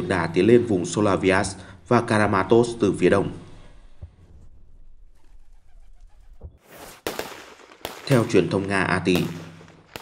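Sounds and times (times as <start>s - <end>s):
pigeon cooing: 5.1s - 6.6s.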